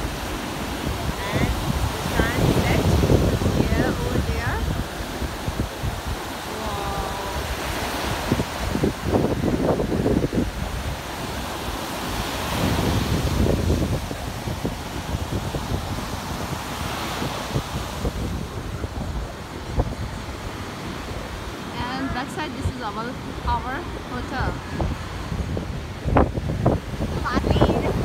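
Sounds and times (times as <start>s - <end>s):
surf breaking on beach: 0.0s - 28.0s
wind buffeting microphone: 0.0s - 28.0s.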